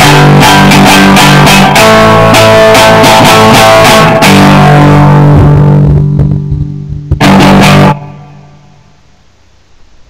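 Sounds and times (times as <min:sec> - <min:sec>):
electric guitar strummed chords: 0:00.0 - 0:10.0.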